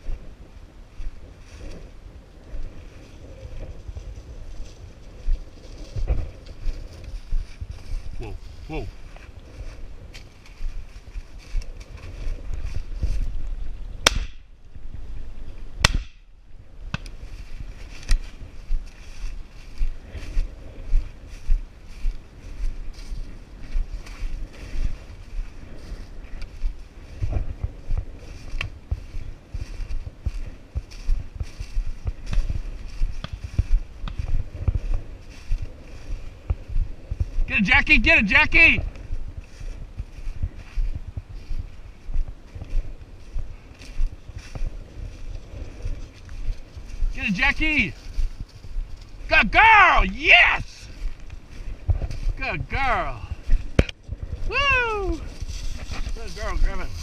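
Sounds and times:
footsteps crunching through stubble: 0.0 - 57.0.

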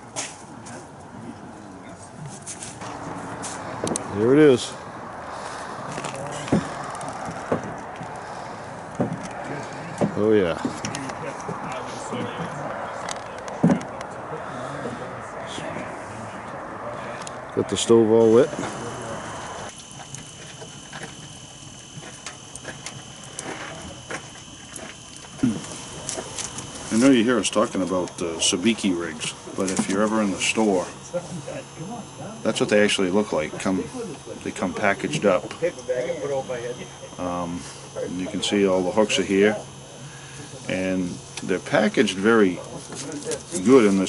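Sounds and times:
wood fire crackling and popping: 19.7 - 27.0.

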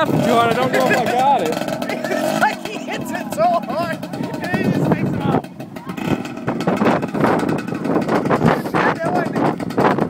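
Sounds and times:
atv engine running: 0.0 - 10.0.

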